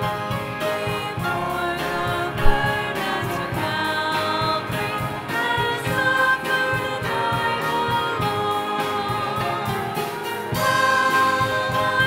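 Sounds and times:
group singing a hymn: 0.8s - 12.0s
short thump: 2.0s - 2.7s.

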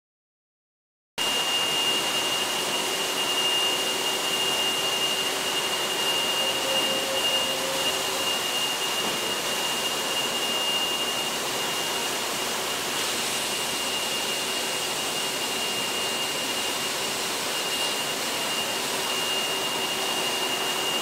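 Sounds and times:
high-pitched whine: 1.2s - 21.0s
machinery hiss: 1.2s - 21.0s.

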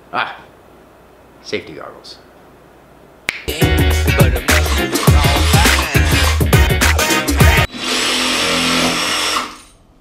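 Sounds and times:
jigsaw cutting wood: 7.7s - 9.8s.

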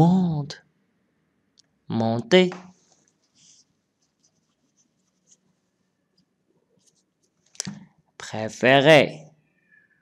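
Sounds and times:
faint rustle: 2.7s - 7.6s.

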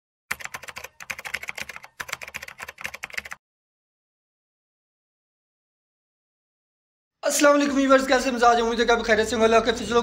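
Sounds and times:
rapid keyboard typing: 0.3s - 3.4s.

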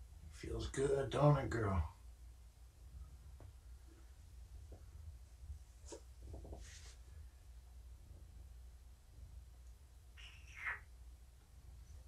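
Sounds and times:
cat meowing: 10.2s - 10.9s.

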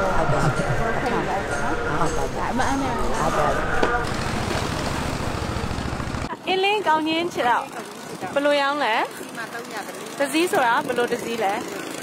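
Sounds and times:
motorboat engine running: 0.0s - 12.0s.

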